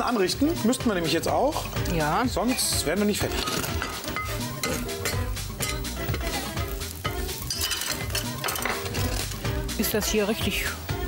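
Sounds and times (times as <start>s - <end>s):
background music: 0.0s - 11.0s
utensils clinking on pots: 0.7s - 10.0s
pancake sizzling in a frying pan: 0.7s - 10.6s.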